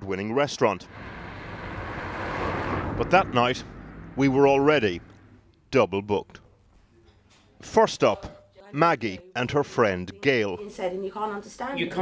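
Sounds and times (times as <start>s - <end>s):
car approaching: 0.8s - 5.7s.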